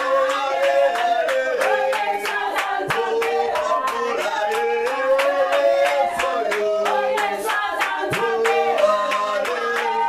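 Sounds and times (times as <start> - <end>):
rhythmic hand clapping: 0.0 - 10.0
worship singing: 0.0 - 10.0.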